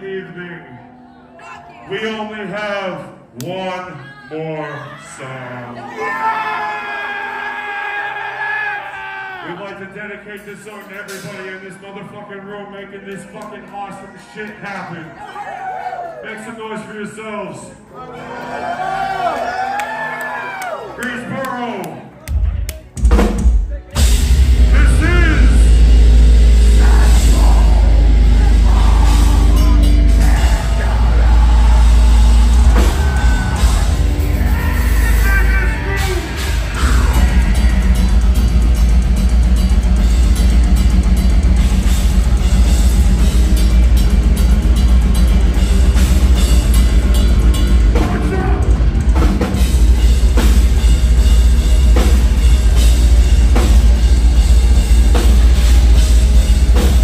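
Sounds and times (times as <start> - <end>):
metal band playing live: 10.4 - 11.8, 23.0 - 57.0
harsh vocals: 24.6 - 38.5.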